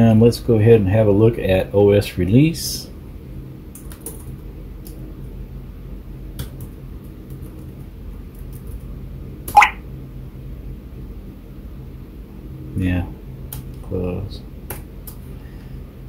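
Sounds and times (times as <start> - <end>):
sharp sound: 9.5 - 9.8.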